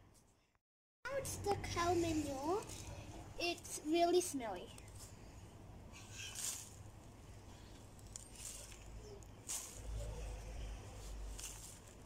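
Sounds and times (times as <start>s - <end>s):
plastic gloves rustling: 6.0s - 12.0s.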